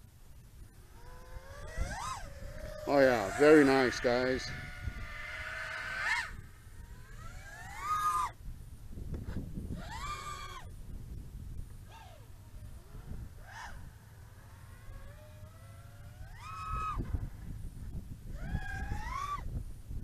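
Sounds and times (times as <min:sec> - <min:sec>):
quadcopter motors whining: 0:00.0 - 0:20.0.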